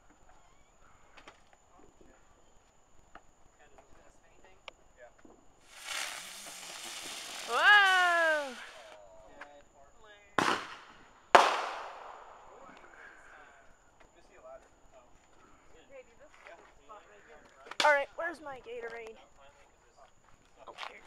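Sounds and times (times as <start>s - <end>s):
firework rising with a hiss: 5.6s - 9.0s
sharp firework bangs: 5.7s - 8.9s, 10.4s - 12.6s
loud falling cry: 7.4s - 8.8s.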